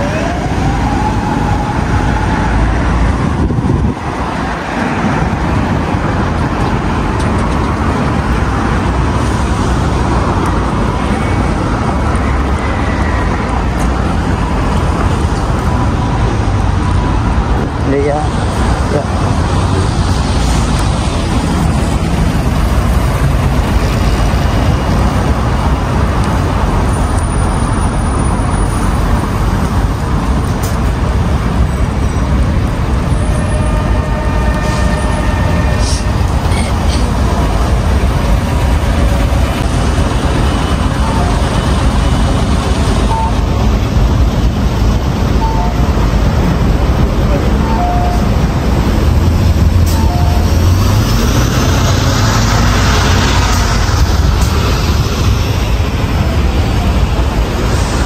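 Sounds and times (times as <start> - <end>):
city traffic rumble: 0.0 - 58.0.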